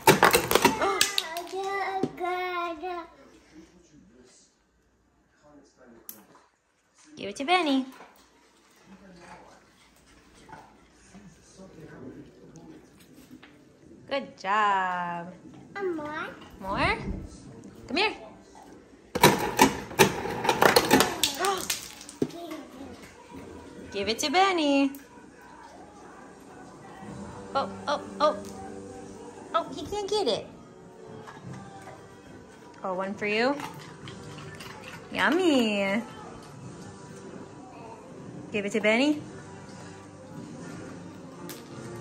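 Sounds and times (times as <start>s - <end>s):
ice dispenser running: 19.2s - 22.1s.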